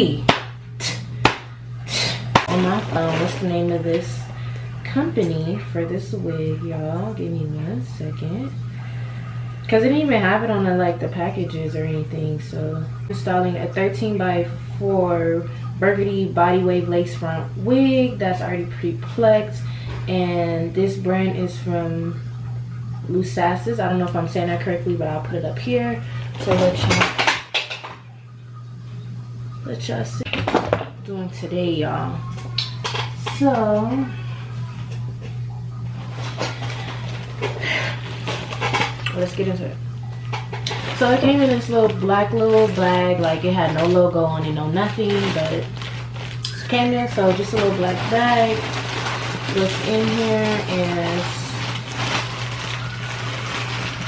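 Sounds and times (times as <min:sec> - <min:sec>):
steady low hum: 0:00.0 - 0:54.0
plastic bag rustling: 0:02.4 - 0:04.2, 0:35.9 - 0:39.6, 0:40.3 - 0:54.0.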